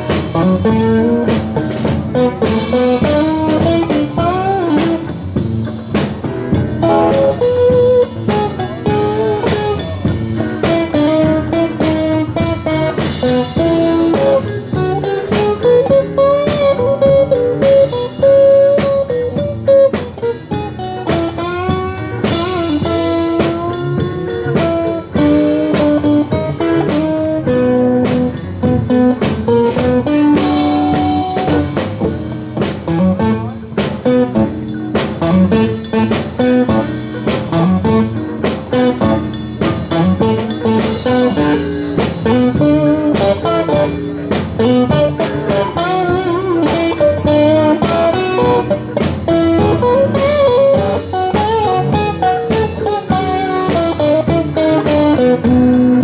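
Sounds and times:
drum kit: 0.0 - 56.0
electric guitar lead with bends: 0.0 - 56.0.

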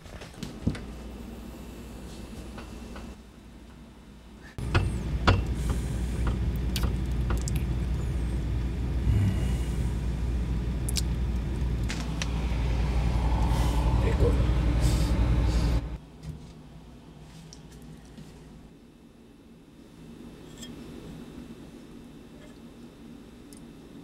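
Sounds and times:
low mechanical rumble: 0.7 - 24.0.

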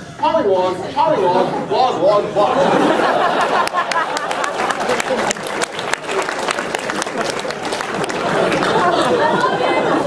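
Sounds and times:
audience laughing and chattering: 0.7 - 10.0
scattered clapping: 3.5 - 9.6.

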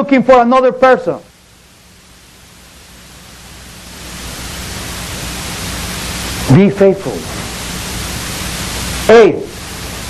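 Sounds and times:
steady broadband hiss: 0.0 - 10.0
man's voice: 9.1 - 9.5.

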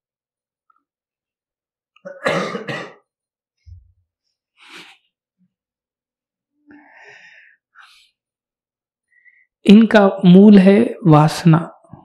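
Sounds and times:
man coughing: 2.1 - 3.1.

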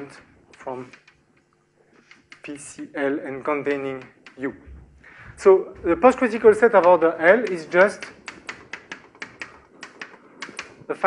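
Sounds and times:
chalk tapping on blackboard: 2.0 - 2.9, 3.8 - 4.5, 6.6 - 10.9.

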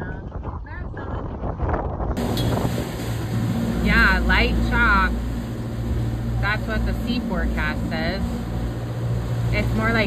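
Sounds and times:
boat engine running: 0.0 - 10.0
water noise: 0.0 - 10.0
wind: 0.0 - 10.0.

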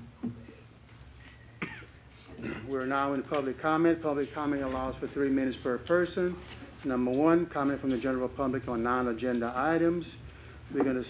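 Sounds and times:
person coughing: 1.6 - 2.7.

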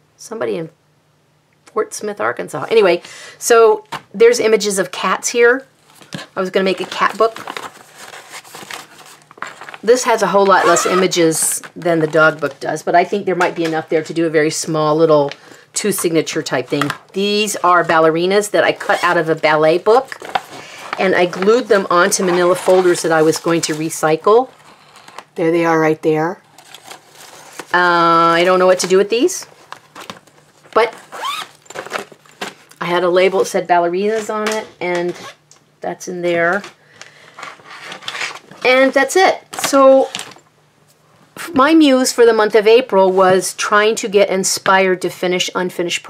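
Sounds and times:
plastic pouch and paper crinkling: 5.8 - 12.6, 26.4 - 32.8
plastic being handled: 5.8 - 14.2, 15.1 - 25.5, 26.4 - 35.3
zipper clicks: 10.4 - 11.1.

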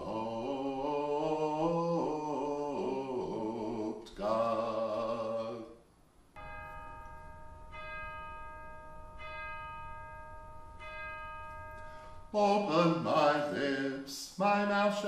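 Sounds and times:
man chanting: 0.0 - 5.8, 12.4 - 15.0
bell-like tone ringing: 6.4 - 13.6.

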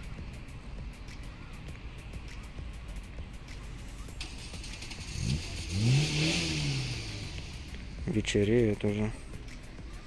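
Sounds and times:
road hiss: 0.0 - 10.0
vehicle engine passing: 4.2 - 9.4.

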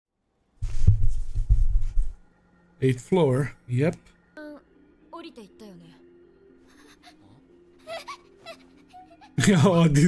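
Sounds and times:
soft background music: 0.2 - 10.0.

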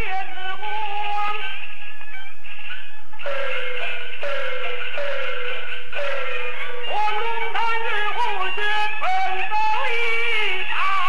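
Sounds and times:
opera singer singing: 0.0 - 1.6, 6.0 - 11.0
opera band strokes with falling tone: 2.7 - 11.0.

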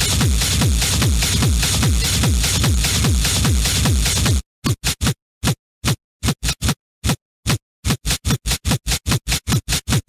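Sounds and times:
stuttering techno music: 0.0 - 5.1, 7.8 - 10.0.

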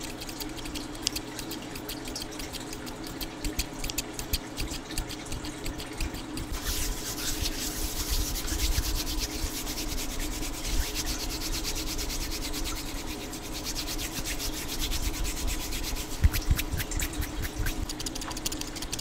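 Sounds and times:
hands rubbing together: 0.0 - 19.0.

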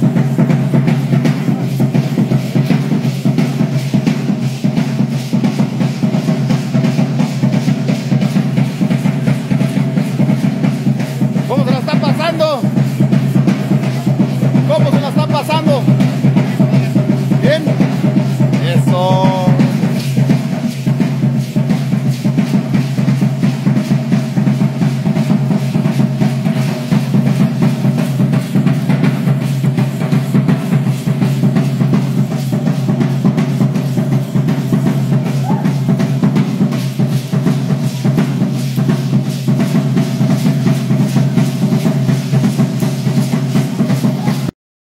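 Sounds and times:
drum beating rapid rhythm: 0.0 - 44.5.

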